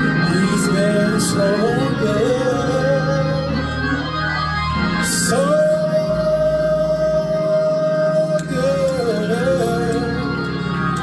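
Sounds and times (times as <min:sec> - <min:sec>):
man singing long high note: 0:00.0 - 0:04.1, 0:05.0 - 0:10.5
instrumental accompaniment: 0:00.0 - 0:11.0.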